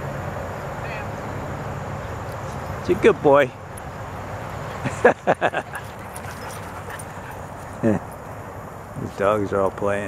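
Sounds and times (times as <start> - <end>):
dog barking: 5.7 - 7.8.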